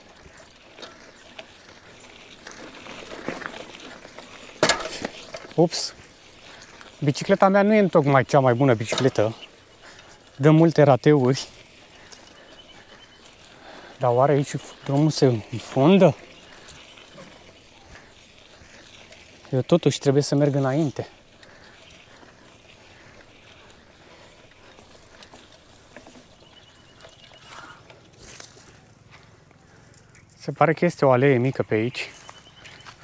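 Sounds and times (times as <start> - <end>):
bicycle rattling on dirt track: 0.0 - 33.0
loud bicycle clatter: 0.8 - 7.3.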